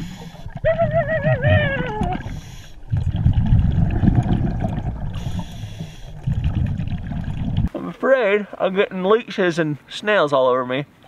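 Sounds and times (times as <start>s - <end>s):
scuba exhaled bubbles gurgling: 0.0s - 7.7s
regulator inhalation hiss: 5.2s - 6.2s.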